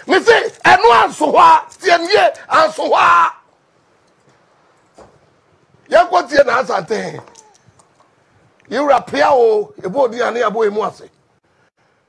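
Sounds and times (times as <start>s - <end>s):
man speaking: 0.0s - 3.4s, 5.9s - 7.5s, 8.7s - 11.2s.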